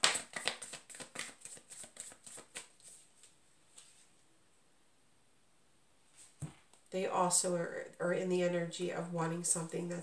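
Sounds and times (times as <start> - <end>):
cards being shuffled: 0.0 - 3.9.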